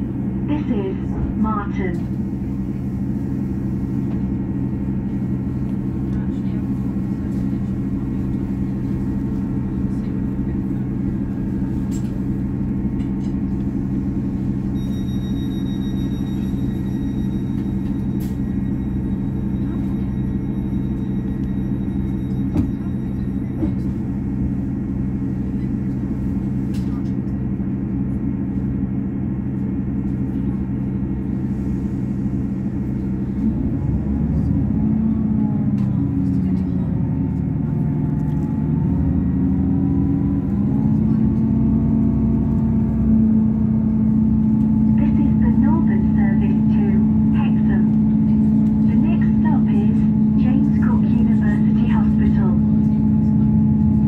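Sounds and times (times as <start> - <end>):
train diesel engine: 0.0 - 54.0.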